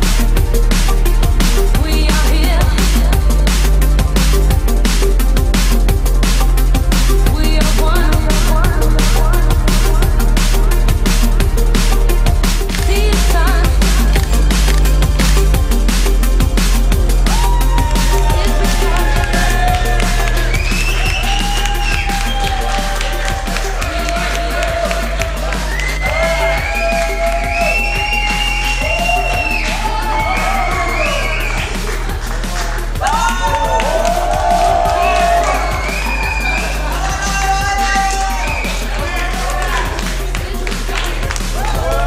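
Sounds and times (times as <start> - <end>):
crowd cheering: 17.2 - 42.0.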